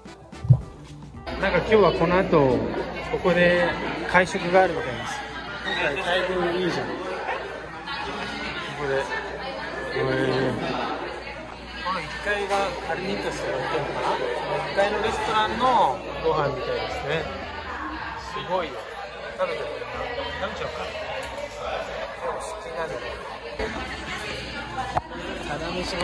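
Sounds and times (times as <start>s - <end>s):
people talking at once: 0.0s - 26.0s.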